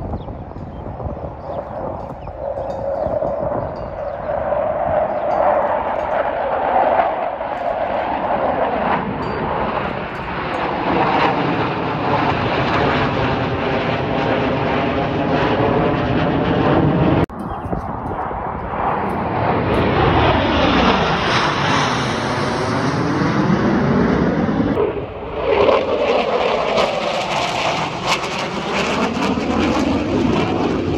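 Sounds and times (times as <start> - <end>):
jets roaring overhead: 0.0 - 30.9.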